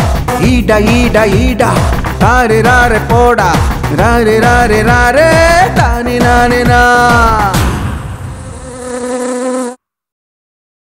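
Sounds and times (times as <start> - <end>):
fly buzzing: 8.2 - 9.8.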